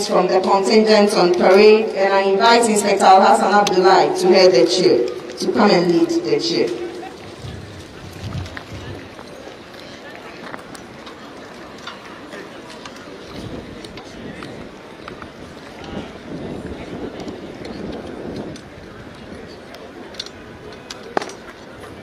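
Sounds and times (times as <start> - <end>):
outdoor noise: 0.0 - 22.0.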